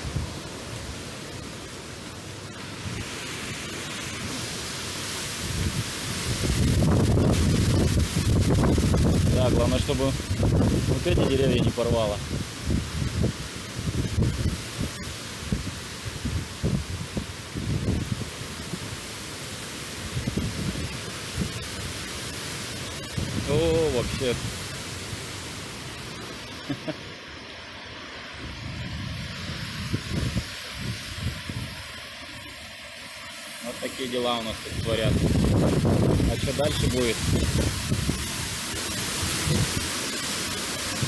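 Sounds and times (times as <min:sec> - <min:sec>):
wind rushing through trees: 0:00.0 - 0:41.0
wind buffeting microphone: 0:05.4 - 0:18.8, 0:20.1 - 0:21.8, 0:28.4 - 0:31.9, 0:34.7 - 0:40.0.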